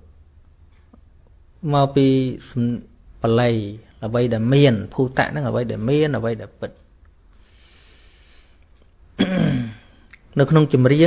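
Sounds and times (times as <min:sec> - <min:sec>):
faint hiss: 0:01.5 - 0:11.0
man clearing throat: 0:09.2 - 0:10.0.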